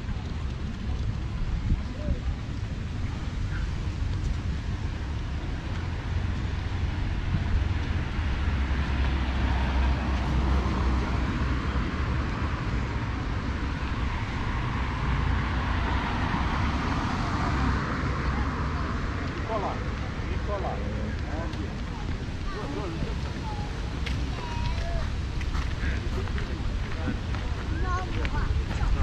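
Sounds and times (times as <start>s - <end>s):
road traffic rumble: 0.0s - 29.0s.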